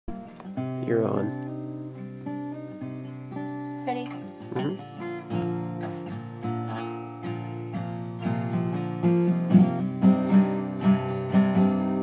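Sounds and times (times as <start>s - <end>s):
acoustic guitar strumming: 0.1s - 12.0s.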